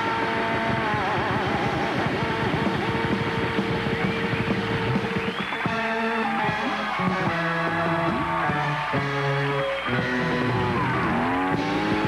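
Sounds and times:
electric guitar bending long notes: 0.0 - 12.0
live rock band playing: 0.0 - 12.0.

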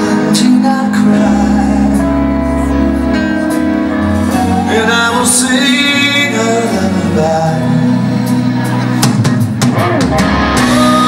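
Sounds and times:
rock band playing: 0.0 - 11.0
drum kit fill: 8.3 - 11.0.

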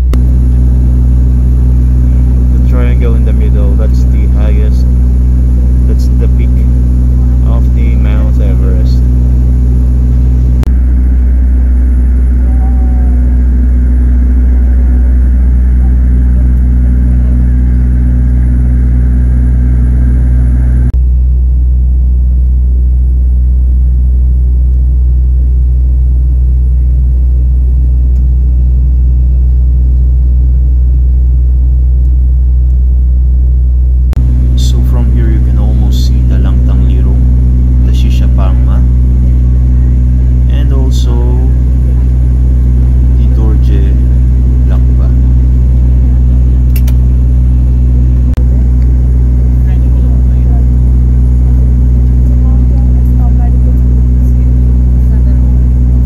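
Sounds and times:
turboprop engines droning: 0.0 - 56.0.

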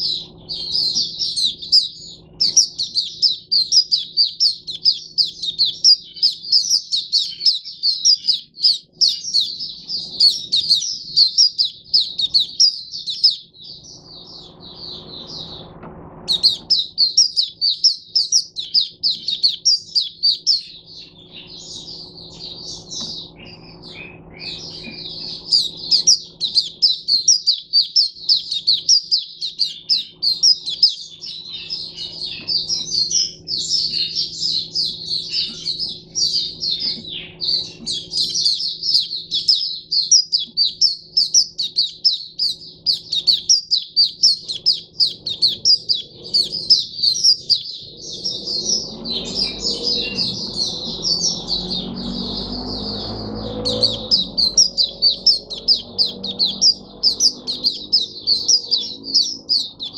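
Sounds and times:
bird twittering song: 0.0 - 59.9.

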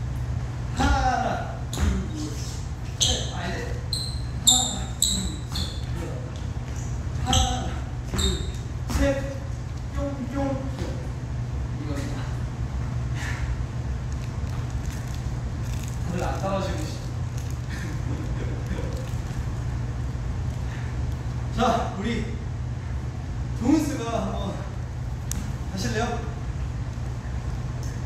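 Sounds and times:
sneakers squeaking on wooden floor: 1.7 - 9.2.

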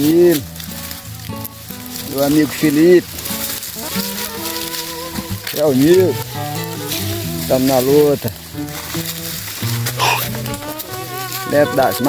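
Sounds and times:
background music held notes: 0.0 - 12.0
dry leaves crackling underfoot: 0.0 - 12.0.

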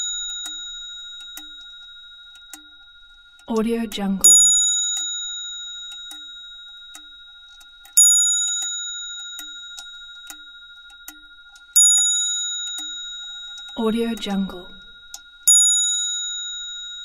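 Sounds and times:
clock ticking softly: 0.0 - 15.6
clock bell ringing: 0.0 - 17.0.

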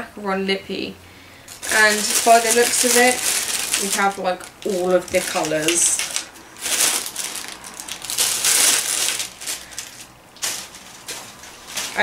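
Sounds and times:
plastic bag crinkling: 1.4 - 12.0.

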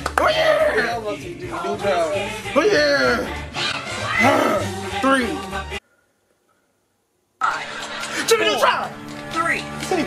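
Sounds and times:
man's voice: 0.1 - 3.5, 4.2 - 5.6.

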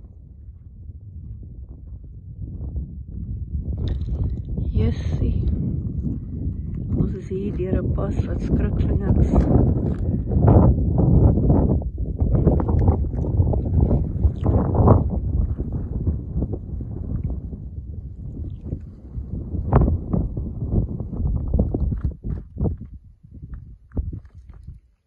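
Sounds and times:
wind rumble on microphone: 0.0 - 25.0
footsteps crunching on stony ground: 8.7 - 10.6, 21.5 - 25.0.

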